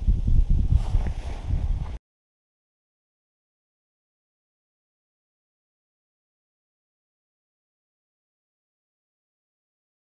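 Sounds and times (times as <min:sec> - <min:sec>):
wind rumble on microphone: 0:00.0 - 0:02.0.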